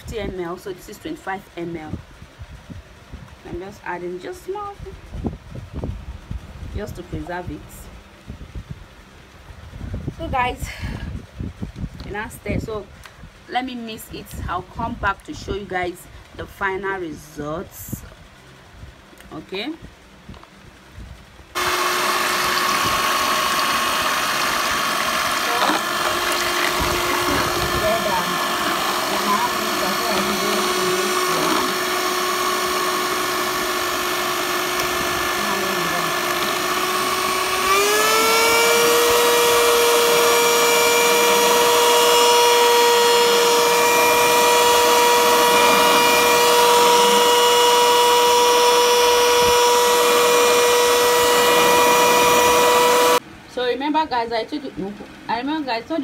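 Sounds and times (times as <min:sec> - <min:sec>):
electric hand mixer whining: 0:21.6 - 0:53.2.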